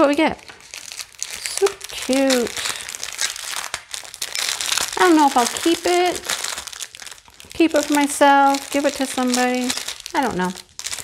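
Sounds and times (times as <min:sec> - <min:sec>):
plastic packet crinkling: 0:00.0 - 0:11.0.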